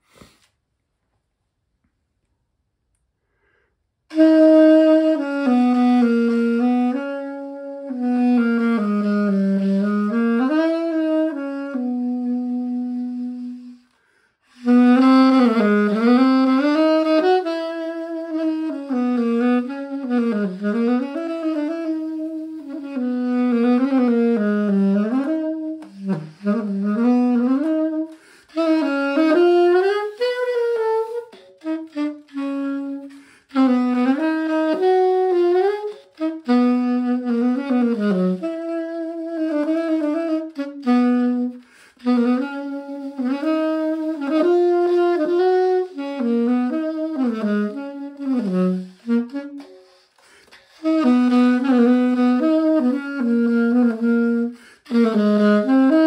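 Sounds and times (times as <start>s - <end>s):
solo alto saxophone: 3.2s - 56.0s.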